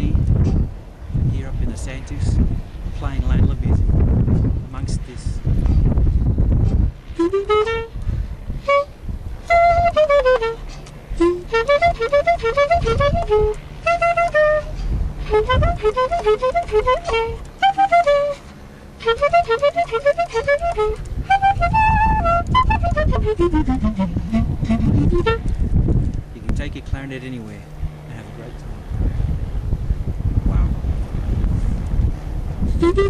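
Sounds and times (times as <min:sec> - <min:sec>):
wind rumble on microphone: 0:00.0 - 0:33.0
solo clarinet: 0:07.1 - 0:08.0, 0:08.6 - 0:25.5, 0:32.6 - 0:33.0.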